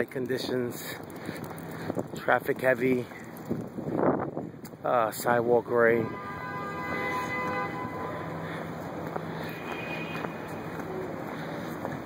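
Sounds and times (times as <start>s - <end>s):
traffic rumble and hiss: 0.0s - 12.0s.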